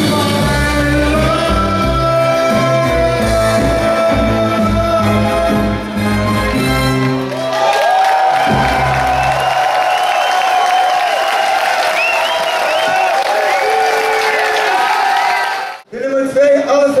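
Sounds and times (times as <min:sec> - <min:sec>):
audience clapping and cheering: 0:06.0 - 0:15.8.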